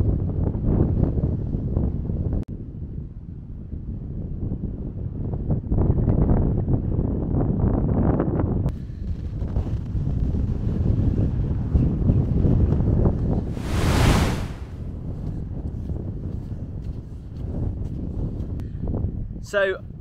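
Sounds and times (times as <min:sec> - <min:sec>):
wind buffeting microphone: 0:08.9 - 0:19.4
loud short whoosh: 0:13.5 - 0:14.9.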